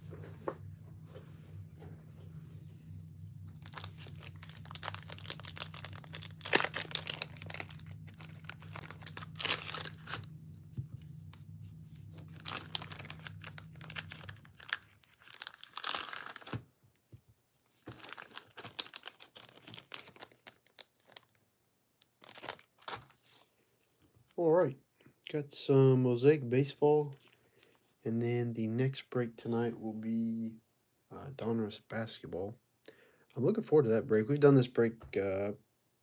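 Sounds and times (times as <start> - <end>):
steady low hum: 0.0 - 18.2
plastic wrapping crinkling and tearing: 3.5 - 10.4, 12.1 - 16.7, 17.8 - 23.9.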